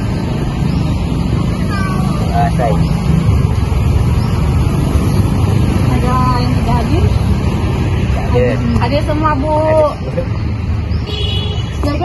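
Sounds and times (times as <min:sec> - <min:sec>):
faint voices: 0:01.4 - 0:03.0.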